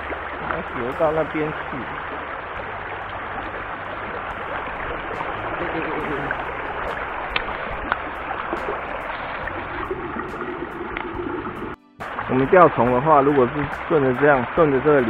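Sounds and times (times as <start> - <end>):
stream running over rocks: 0.0 - 15.0.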